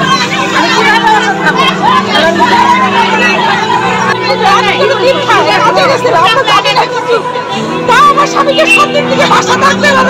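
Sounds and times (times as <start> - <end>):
women talking: 0.0 - 10.0.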